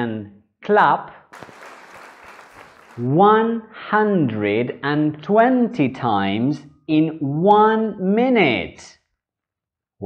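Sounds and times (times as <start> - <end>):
many hands clapping: 1.4 - 3.2.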